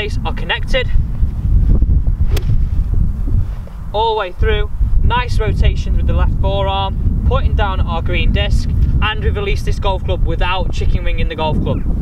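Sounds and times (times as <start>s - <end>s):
wind buffeting microphone: 0.0s - 12.0s
golf club sharp click: 2.3s - 2.6s.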